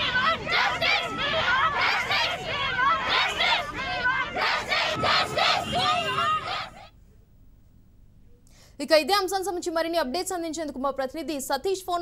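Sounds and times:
crowd chanting slogans: 0.0 - 6.9.

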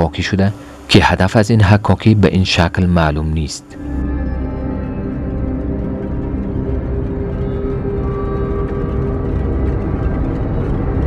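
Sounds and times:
dark ominous held tones: 0.0 - 11.0
heavy low rumble: 0.0 - 11.0.

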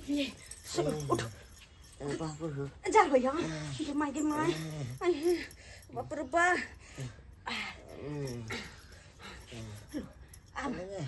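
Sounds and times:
man moaning: 7.8 - 8.8.

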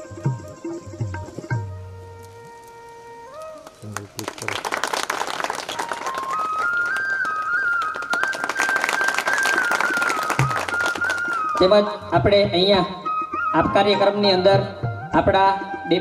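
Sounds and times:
instrumental melody: 0.0 - 4.1, 5.7 - 16.0
audience clapping: 3.5 - 11.8
man speaking over a microphone: 3.8 - 4.6.

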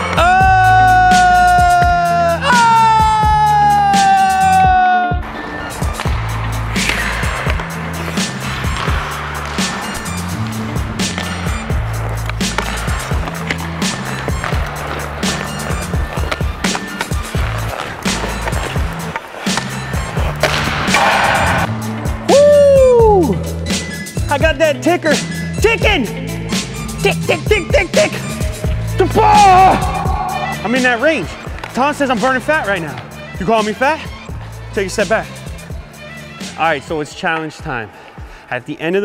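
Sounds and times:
background music with a beat: 0.0 - 36.8
skate blades scraping ice: 5.2 - 22.2, 27.8 - 38.4.

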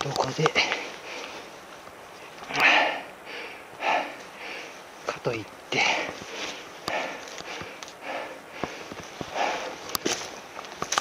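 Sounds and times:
footsteps on sticks and stones: 0.0 - 2.9, 5.0 - 11.0
person breathing hard: 0.6 - 1.6, 2.5 - 5.0, 5.7 - 10.3.

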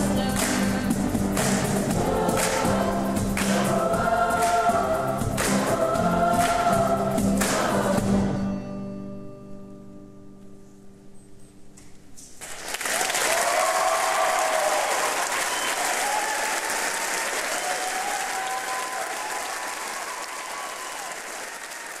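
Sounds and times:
audience applauding: 12.4 - 22.0
audience cheering: 12.7 - 22.0.

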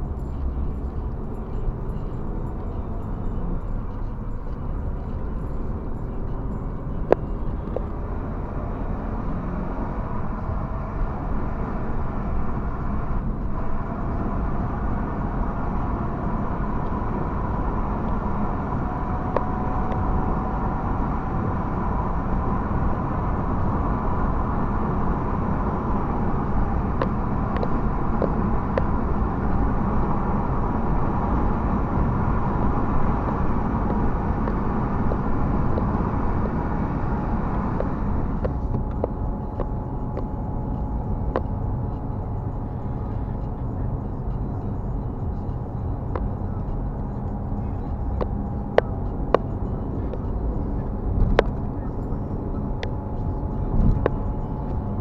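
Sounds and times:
car engine and road noise: 0.0 - 55.0
faint whine rising in pitch: 0.0 - 55.0.

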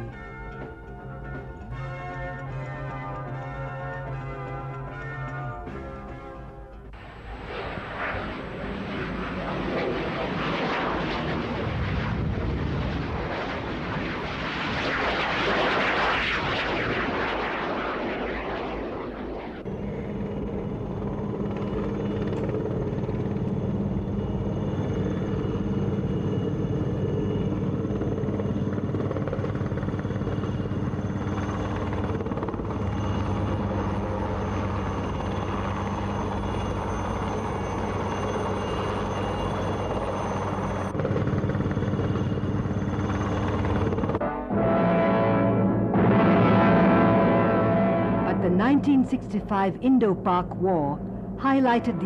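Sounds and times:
propeller aircraft engine rushing: 0.0 - 26.6
helicopter turbine and rotor: 0.0 - 44.2.

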